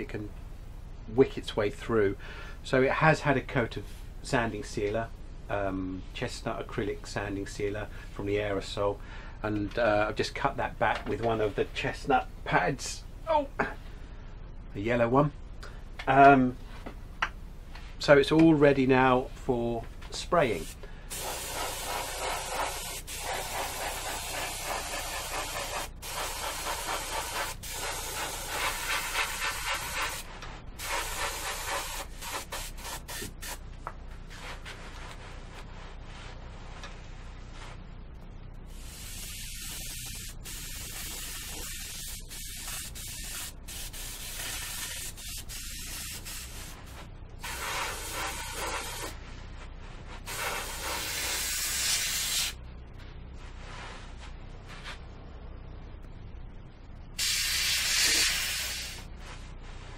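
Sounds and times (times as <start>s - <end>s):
airbrush spraying hiss: 20.5s - 33.6s, 38.7s - 49.2s, 50.1s - 52.6s, 57.2s - 59.1s.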